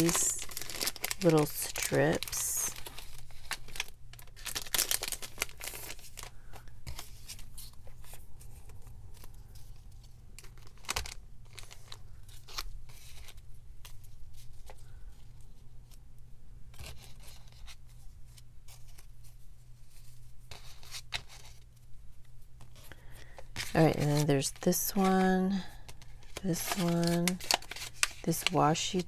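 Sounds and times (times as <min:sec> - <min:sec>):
plastic packaging crinkling: 0:00.0 - 0:15.0, 0:22.7 - 0:29.0.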